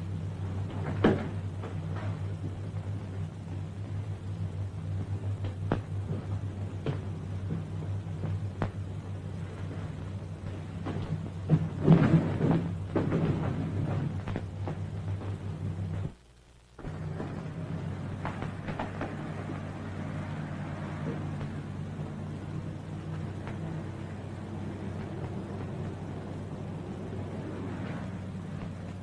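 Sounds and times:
film soundtrack hum and crackle: 0.0 - 29.0
noisy clatter: 0.0 - 29.0.

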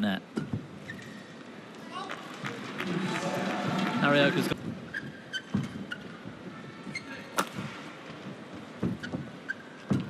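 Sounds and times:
shoe squeaks on court: 4.9 - 6.2, 8.9 - 10.0
racket hitting shuttlecock: 7.3 - 7.8.

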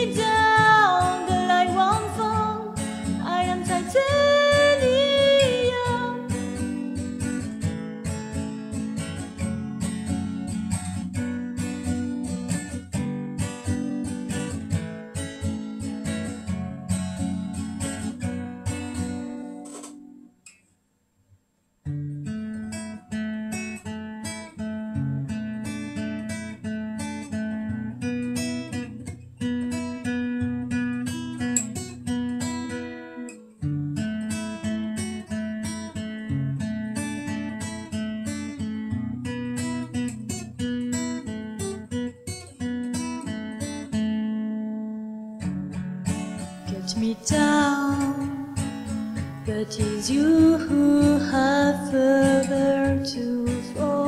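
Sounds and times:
acoustic guitar strumming chords: 0.0 - 20.4, 21.9 - 54.0.

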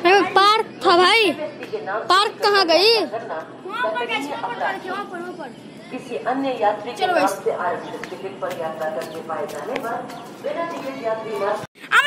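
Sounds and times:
public-address announcement: 0.0 - 11.6.

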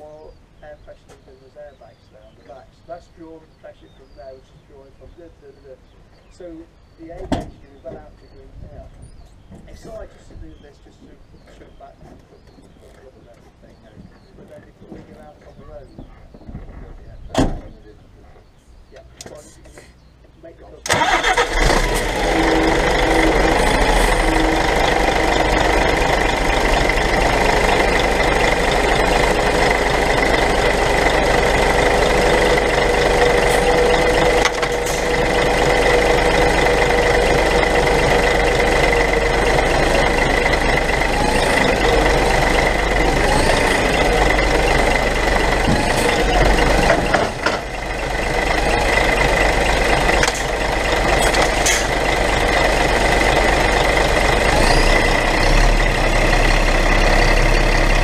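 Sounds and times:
diesel truck engine running: 0.0 - 58.0.

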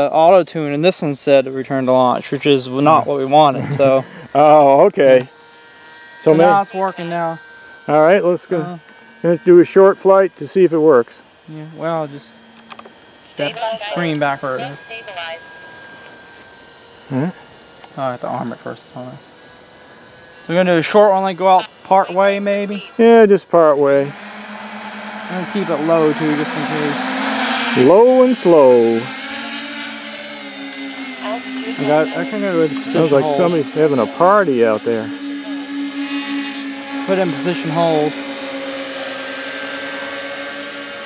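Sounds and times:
quadcopter propellers humming: 0.0 - 41.0
person speaking: 6.3 - 7.1, 31.2 - 35.6, 37.0 - 38.2.

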